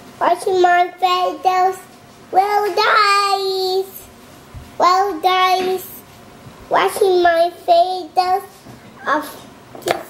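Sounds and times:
toddler girl singing: 0.2s - 4.0s, 4.8s - 6.0s.

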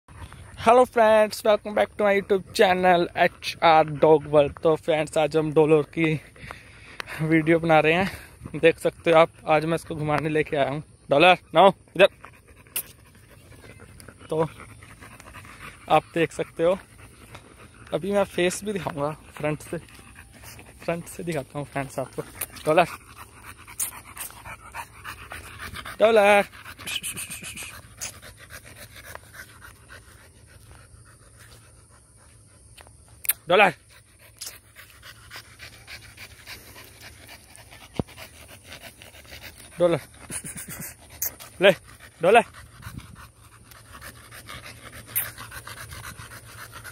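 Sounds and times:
dog panting softly: 0.1s - 46.9s.

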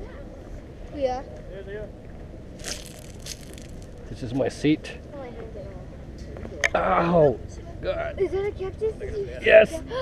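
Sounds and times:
footsteps crunching on gravel: 2.6s - 4.1s.

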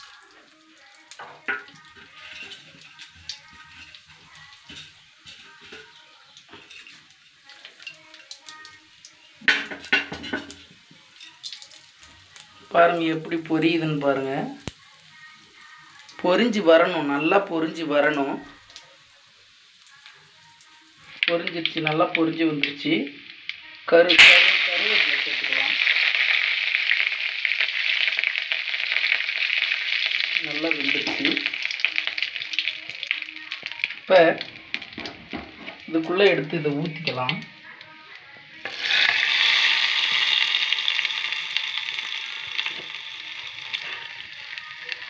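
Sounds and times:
chillies sizzling in hot oil: 0.0s - 45.0s.

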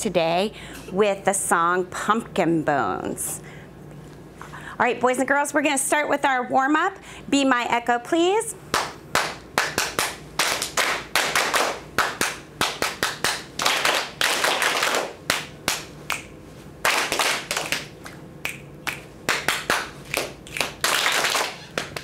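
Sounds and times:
finger snaps and hand claps: 8.8s - 22.0s.

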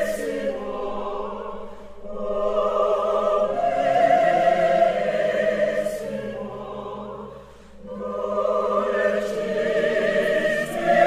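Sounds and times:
sung voices with vibrato: 0.0s - 11.0s.

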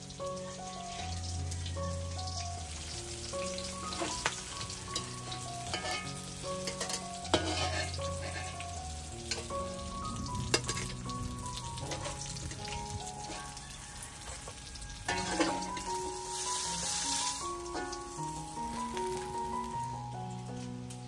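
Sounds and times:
fish sizzling in oil: 0.0s - 21.0s
metal utensils scraping a wok: 3.5s - 9.9s, 10.5s - 19.5s.

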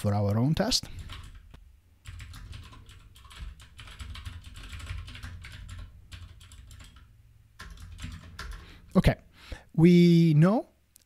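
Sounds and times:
typing on a keyboard: 0.9s - 8.8s.

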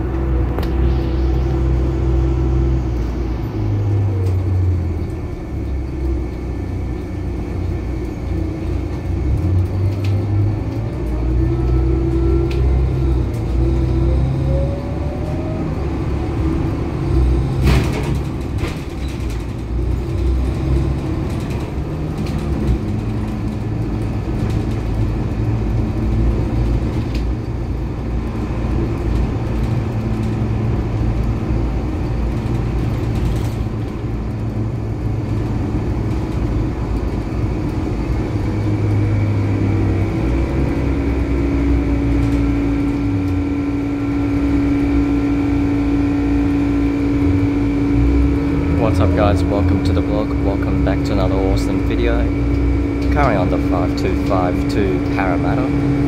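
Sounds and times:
steady hum: 0.0s - 5.4s, 41.0s - 56.0s
bus engine running: 0.0s - 56.0s
road rumble: 0.0s - 56.0s.

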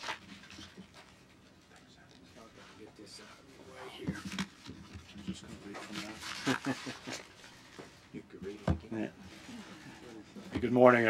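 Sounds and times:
paper rustling: 0.0s - 1.4s, 4.1s - 8.1s
shuffling: 0.0s - 10.8s.

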